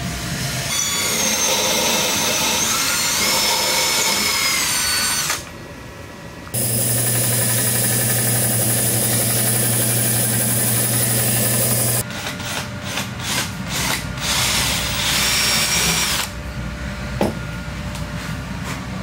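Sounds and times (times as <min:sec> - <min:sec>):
belt sander running: 0:06.6 - 0:12.0
cordless drill whining: 0:06.6 - 0:12.0.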